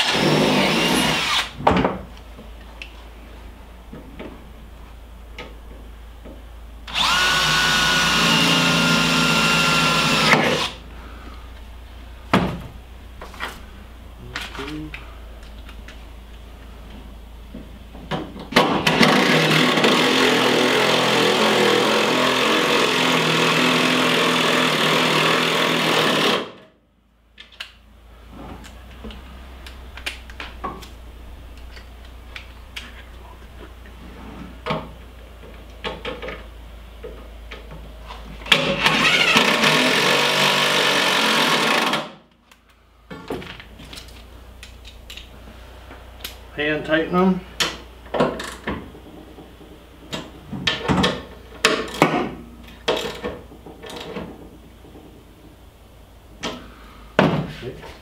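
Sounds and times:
power drill running: 0:00.0 - 0:01.6, 0:06.9 - 0:10.8, 0:18.8 - 0:26.6, 0:38.6 - 0:42.1.

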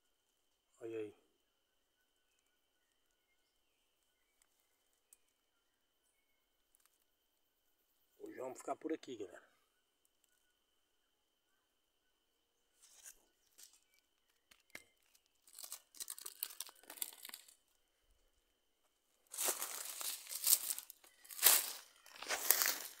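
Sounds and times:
dry leaves crackling and rustling: 0:15.4 - 0:17.6, 0:19.3 - 0:23.0.

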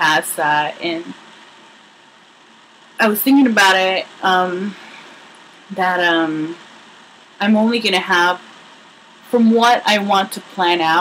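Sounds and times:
low hiss of recording noise: 0:00.0 - 0:11.0.

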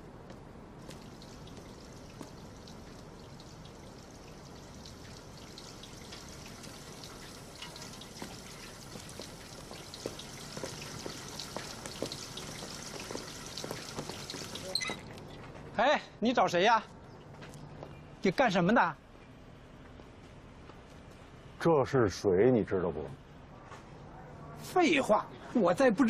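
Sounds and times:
water splashing into concrete trough: 0:00.8 - 0:15.3.

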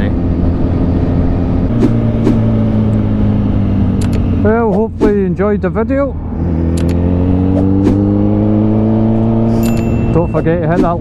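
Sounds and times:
motorcycle engine running: 0:00.0 - 0:04.8
short clicks: 0:04.0 - 0:04.2, 0:06.7 - 0:07.0.

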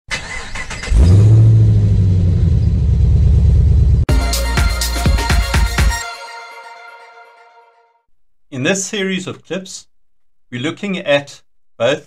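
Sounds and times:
car engine idling: 0:01.5 - 0:04.1.

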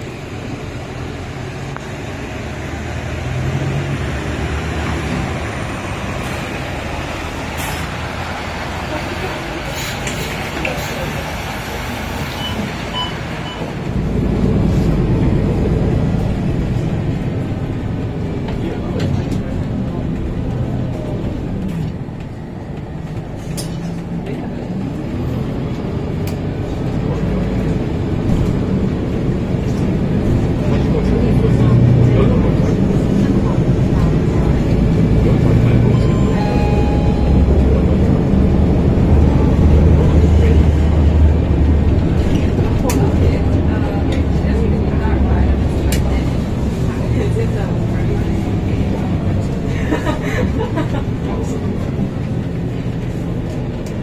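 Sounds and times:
bus diesel engine accelerating: 0:00.0 - 0:54.0.

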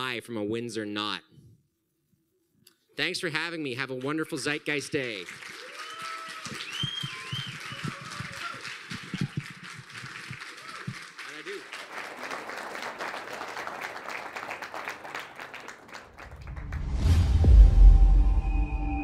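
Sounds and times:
audience clapping: 0:03.8 - 0:17.1.

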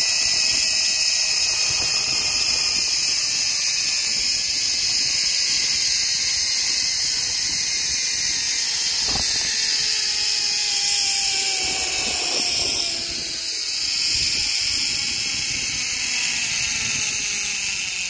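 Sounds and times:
zipline trolley whirring on cable: 0:00.0 - 0:18.0.

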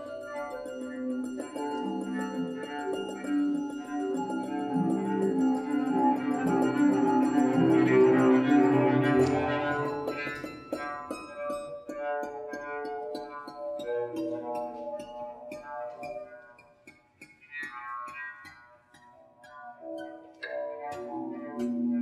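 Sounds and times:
improvised piano and cello music: 0:01.8 - 0:11.4.

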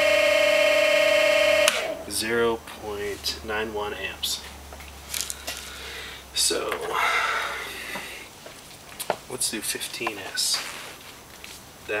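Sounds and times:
electric motor whine: 0:00.0 - 0:02.1.

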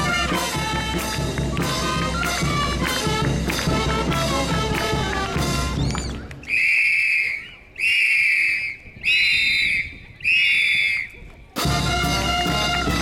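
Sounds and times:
long high whistle blasts: 0:05.9 - 0:11.1.

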